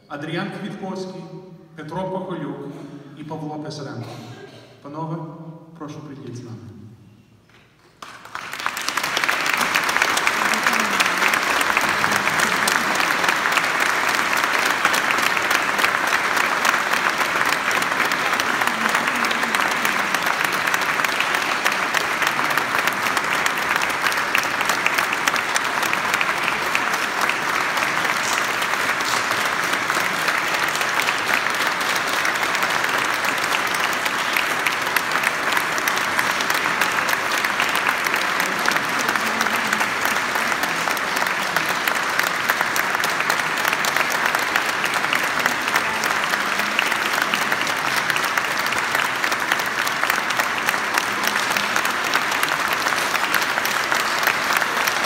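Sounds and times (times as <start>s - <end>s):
audience applauding: 7.8s - 55.0s.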